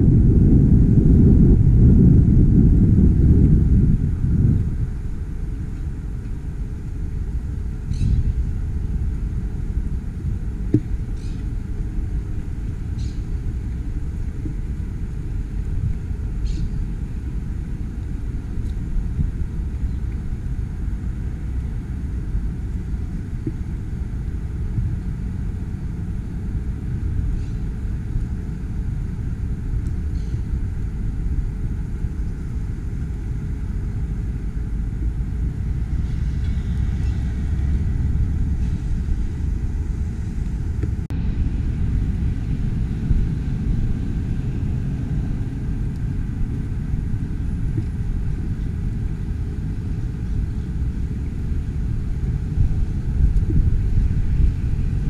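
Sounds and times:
low outdoor rumble: 0.0 - 55.0.

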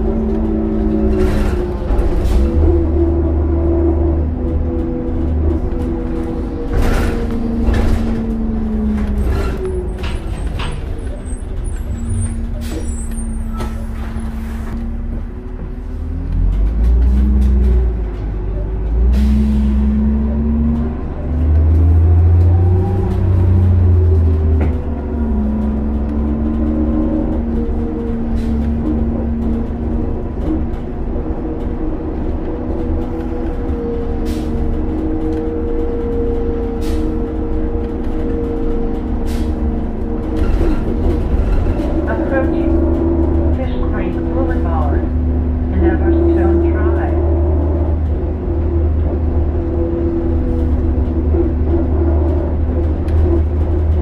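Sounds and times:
bus engine rumble: 0.0 - 54.0.

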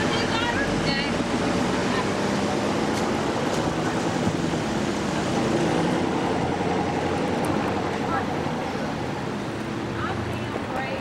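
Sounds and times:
car engines humming: 0.0 - 11.0
road and air noise: 0.0 - 11.0.

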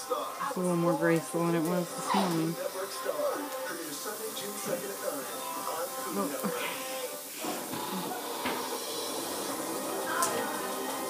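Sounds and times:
faint speech: 0.0 - 8.7, 9.8 - 11.0
background music: 0.0 - 11.0.

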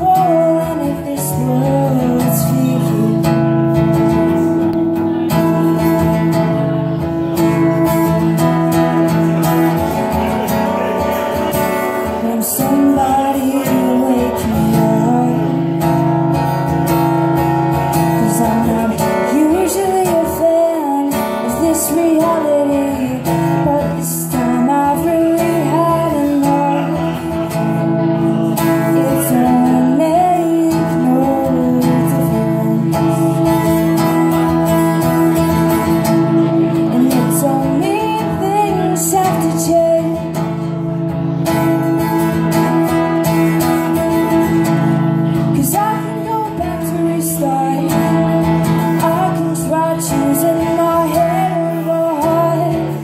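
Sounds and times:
woman singing: 0.0 - 4.2, 11.8 - 16.3, 17.7 - 42.4, 43.8 - 53.0
strummed acoustic guitar: 0.0 - 53.0.

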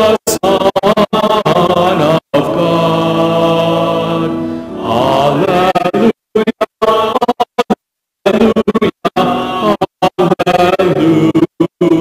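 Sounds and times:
choir singing: 1.5 - 6.1, 9.2 - 9.8
keyboard accompaniment: 1.5 - 6.1.

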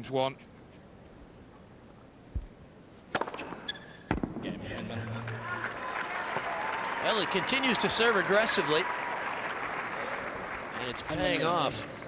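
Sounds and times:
tennis ball struck by racket: 3.1 - 4.4
sharp ball impact: 3.1 - 4.6
crowd noise: 4.2 - 12.0.

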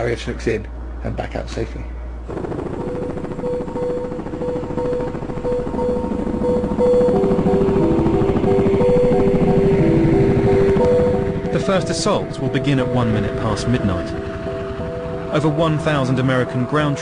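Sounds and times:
helicopter rotor chopping: 2.3 - 17.0
music of held notes: 4.9 - 17.0.

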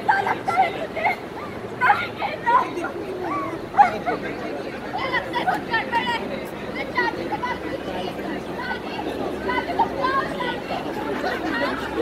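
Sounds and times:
people giving sliding cries: 0.0 - 6.2
crowd chatter: 0.0 - 12.0.

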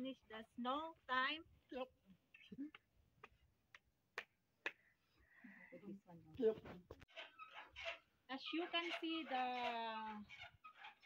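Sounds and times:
woman speaking: 8.3 - 10.3.

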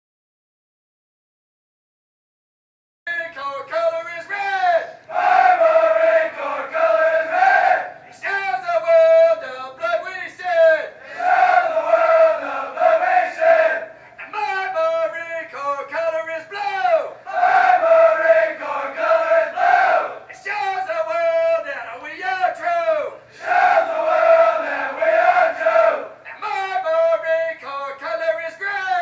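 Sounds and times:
men shouting long yells: 16.9 - 20.7, 23.4 - 27.0.

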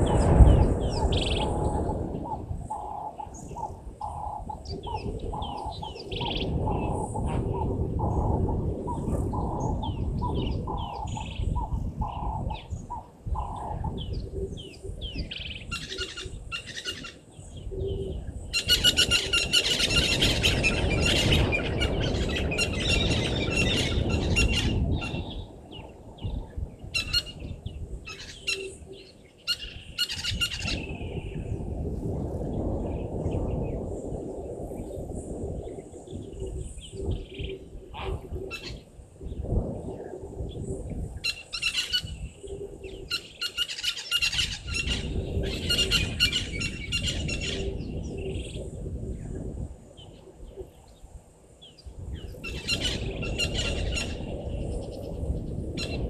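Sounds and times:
low rumbling noise: 0.0 - 16.4
birds chirping: 0.0 - 31.6.

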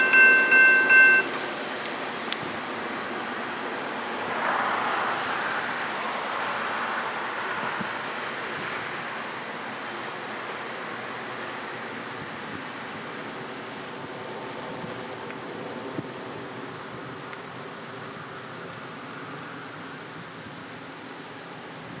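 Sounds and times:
train wheels rolling: 0.0 - 2.7.

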